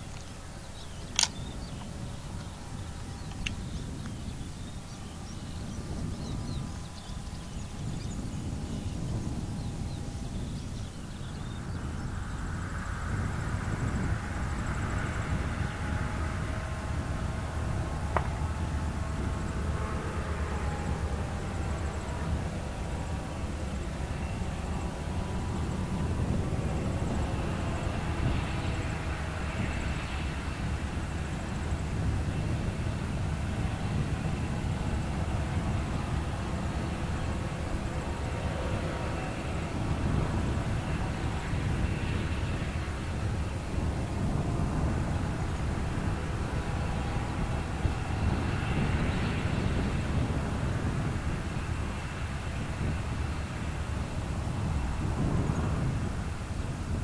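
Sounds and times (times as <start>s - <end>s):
locomotive engine drone: 0.0s - 57.0s.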